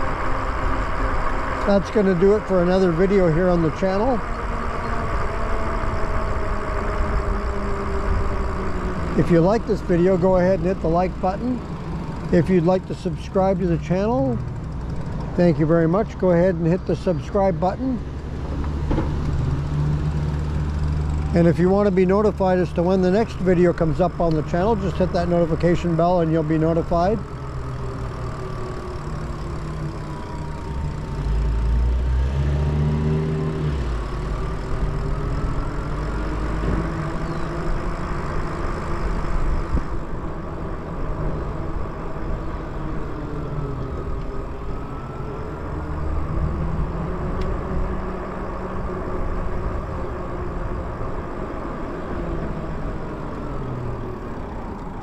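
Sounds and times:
electric motor whine: 0.0 - 12.3, 23.0 - 55.0
wind and tyre rumble: 0.0 - 55.0.

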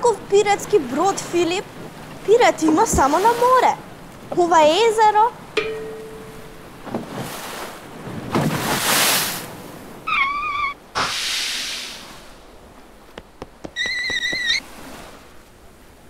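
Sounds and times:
wavering animal cries: 10.1 - 10.8, 13.7 - 14.6
cartoon waves washing in: 10.9 - 12.7.

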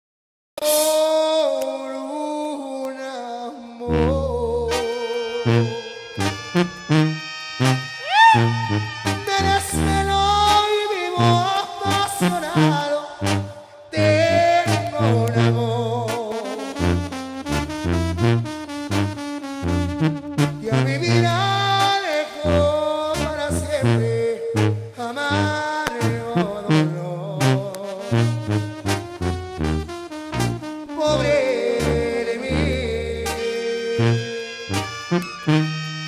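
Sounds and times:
brass band melody: 3.8 - 36.0
sustained horn notes: 3.8 - 36.0
repeated bass notes: 3.9 - 36.0.

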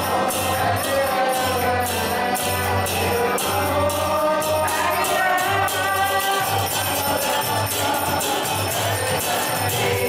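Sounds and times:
group singing a chant: 0.0 - 10.0
hand cymbals jingling: 0.0 - 10.0.

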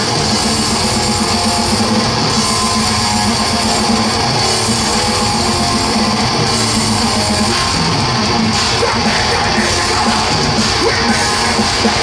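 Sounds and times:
metal band playing live: 0.0 - 12.0.

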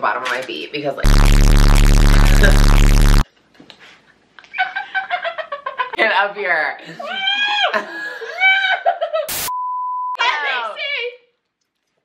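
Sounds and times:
harsh electronic buzz with static: 1.1 - 3.2.

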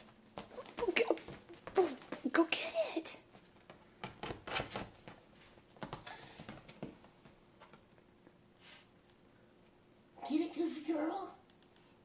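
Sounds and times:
dog claws tapping on leather couch: 3.3 - 7.8.

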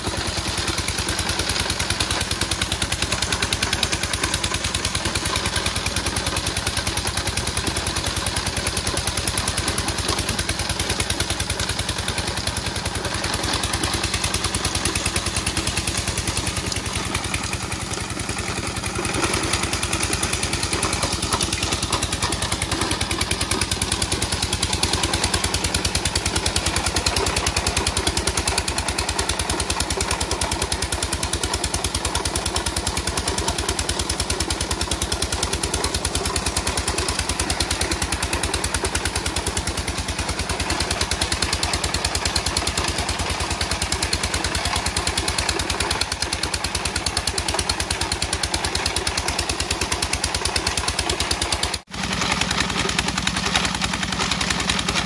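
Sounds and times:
stone grinding machine running: 0.0 - 55.0.

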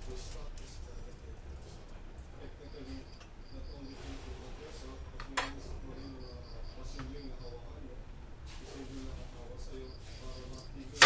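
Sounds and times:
faint background voices: 0.0 - 11.0
cricket-like chirping: 1.9 - 4.8, 5.5 - 8.0, 9.6 - 10.9.

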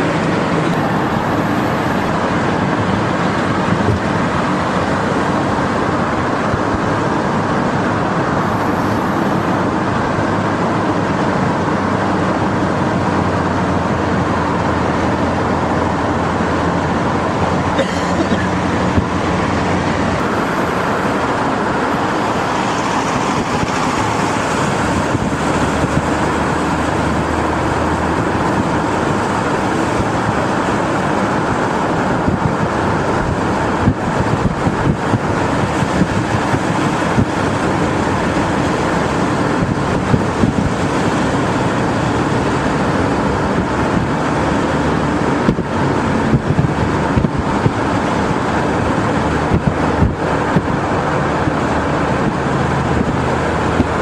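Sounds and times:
car engine: 0.0 - 54.0
wind rushing: 18.5 - 54.0.

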